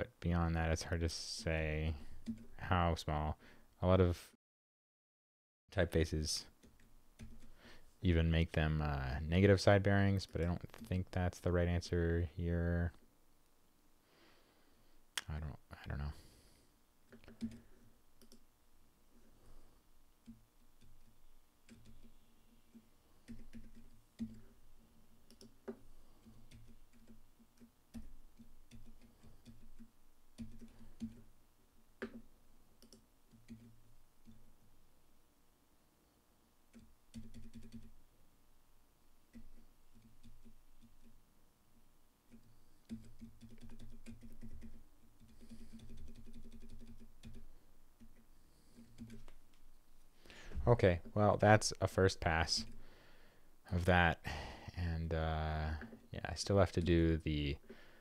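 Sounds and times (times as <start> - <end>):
computer keyboard and mouse clicks: 6.6 - 7.6, 20.2 - 22.1, 22.7 - 24.5, 25.3 - 31.3, 32.8 - 34.4, 42.3 - 49.6.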